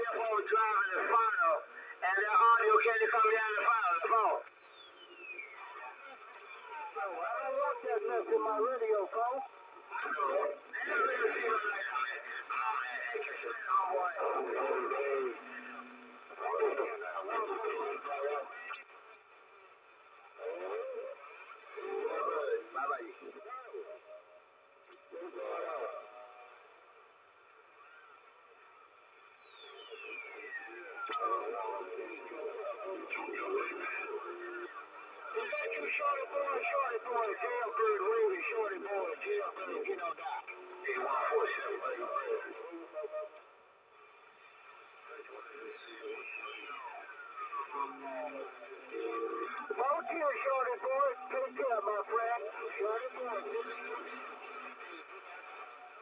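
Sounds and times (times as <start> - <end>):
radio static: 0.0 - 4.4, 6.9 - 19.1, 20.3 - 24.0, 30.3 - 43.4, 44.1 - 56.0
garbled radio voices: 0.0 - 4.5, 5.2 - 26.8, 29.9 - 56.0.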